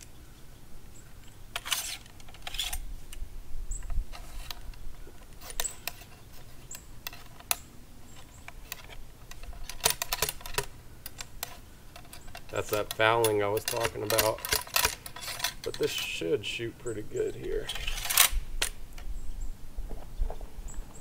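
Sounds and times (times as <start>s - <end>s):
ramrod scraping in gun barrel: 1.5s - 2.9s, 3.8s - 18.8s.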